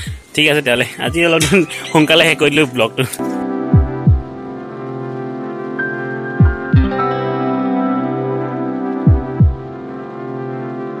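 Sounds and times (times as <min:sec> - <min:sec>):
sustained synth chords: 0:01.0 - 0:11.0.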